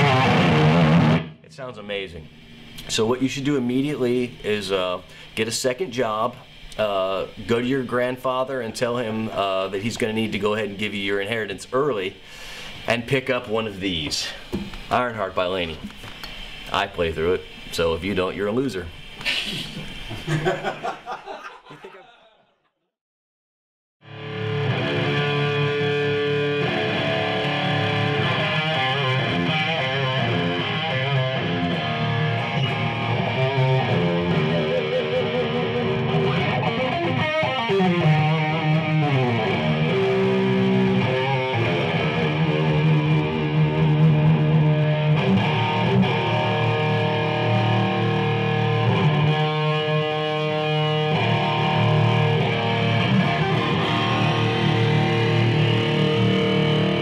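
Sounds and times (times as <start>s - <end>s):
distorted electric guitar riffing: 0.0s - 1.5s, 24.0s - 57.0s.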